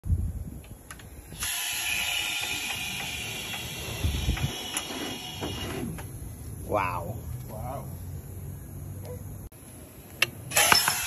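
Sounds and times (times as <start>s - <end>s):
compressed air hissing through hose: 1.1s - 6.6s.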